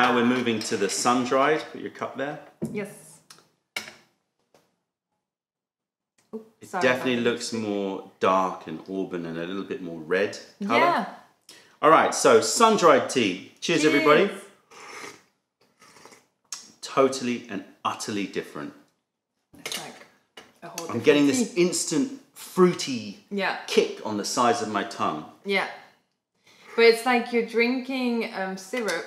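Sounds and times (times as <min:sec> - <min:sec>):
person speaking: 0:06.6 - 0:09.3, 0:10.0 - 0:11.1, 0:11.8 - 0:15.1, 0:20.6 - 0:23.1
tea sipping slurps: 0:14.7 - 0:16.3.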